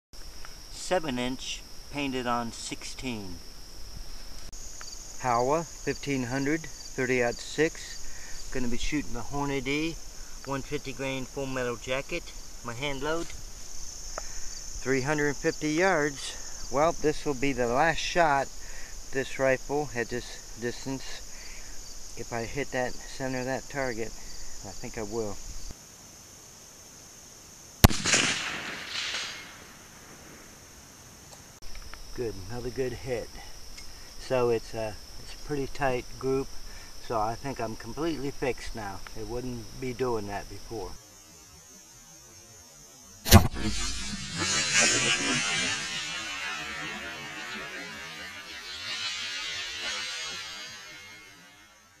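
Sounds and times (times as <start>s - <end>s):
outdoor background hiss: 0.2s - 52.0s
rifle shot: 27.8s - 29.8s, 43.3s - 46.2s.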